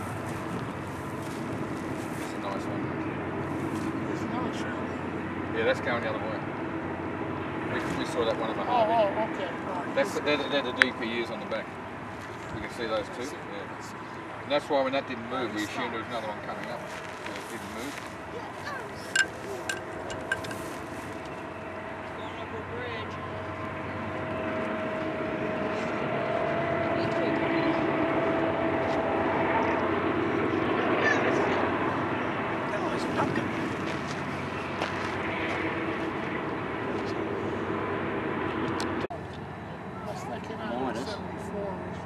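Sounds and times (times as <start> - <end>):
diesel locomotives droning: 0.0 - 42.0.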